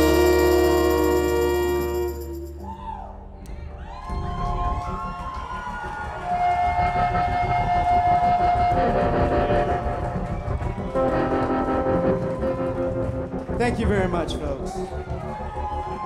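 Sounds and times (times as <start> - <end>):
saxophone and horns chords: 0.0 - 2.8, 5.3 - 16.0
drums: 3.8 - 16.0.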